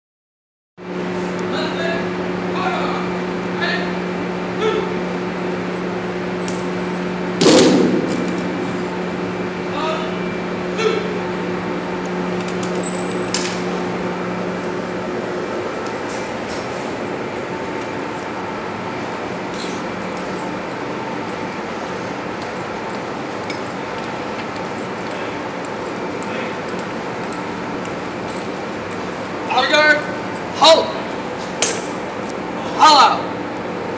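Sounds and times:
steady low hum: 0.8 - 33.9
rifle volley: 7.4 - 8.5.

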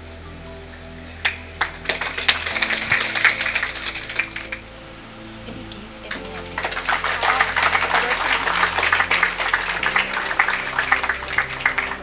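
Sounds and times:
background music with held notes: 0.0 - 12.0
audience applause: 1.2 - 4.7, 5.9 - 12.0.

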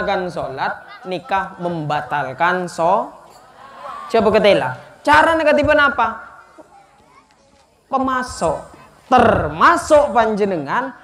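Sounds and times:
faint children's voices: 0.0 - 2.4, 6.4 - 9.7
man's amplified speech: 0.0 - 3.1, 4.1 - 6.3, 7.9 - 11.0.

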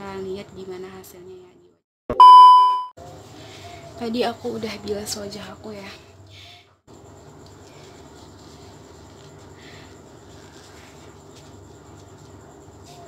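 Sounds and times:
low room hum: 3.0 - 13.0
tissue patting wet face: 7.3 - 13.0.

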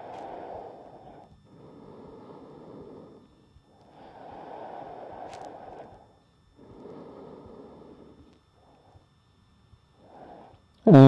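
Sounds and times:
man breathing deeply: 0.0 - 9.1, 10.0 - 10.6.

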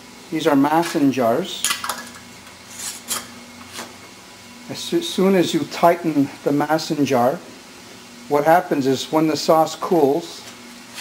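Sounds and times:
metal thread scraping on glass: 2.7 - 3.8.

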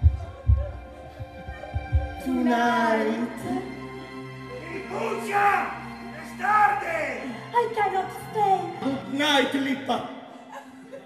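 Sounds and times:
heartbeat thumps: 0.0 - 2.6
soft music: 0.0 - 11.0.

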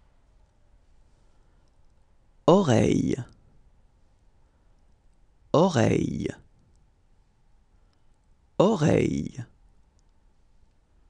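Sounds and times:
faint clicks: 1.6 - 2.0, 4.7 - 5.3, 6.5 - 6.9, 7.8 - 8.3, 9.8 - 10.8
person speaking a word: 2.5 - 3.3, 5.6 - 6.4, 8.6 - 9.5.

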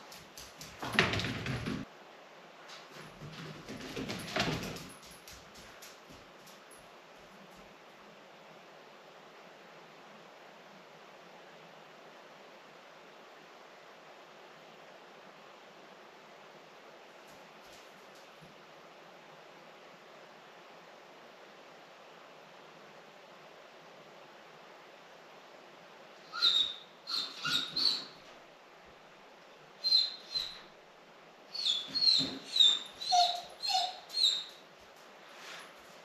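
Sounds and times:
dog whining and yelping: 26.2 - 28.2, 29.8 - 30.6, 31.5 - 34.6.

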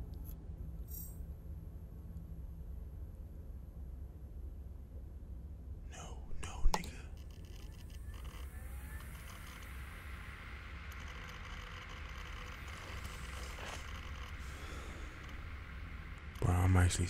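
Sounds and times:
low rumble: 0.5 - 17.0
even hiss: 7.9 - 17.0.

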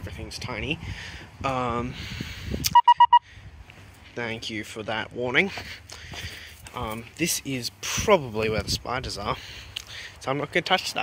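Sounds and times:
electronic warning beeps: 2.7 - 3.2.

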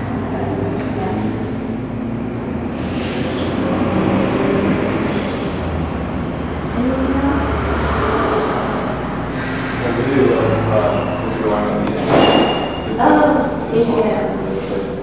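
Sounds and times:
steady low rumble: 4.3 - 12.1.

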